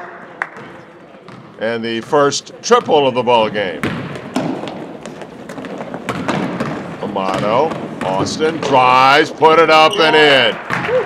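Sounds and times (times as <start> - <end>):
gym hall background noise: 0.0 - 11.0
basketball bouncing on wooden floor: 2.7 - 3.1, 3.7 - 8.9, 10.7 - 11.0.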